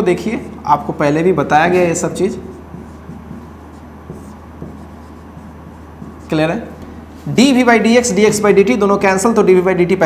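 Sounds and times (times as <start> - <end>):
marker pen on whiteboard: 0.0 - 9.3
steady low hum: 0.0 - 10.0.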